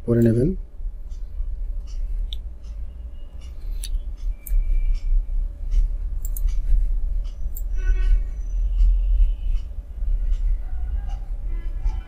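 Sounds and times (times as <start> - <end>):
steady low hum: 0.0 - 12.0
computer mouse clicks: 1.1 - 7.7.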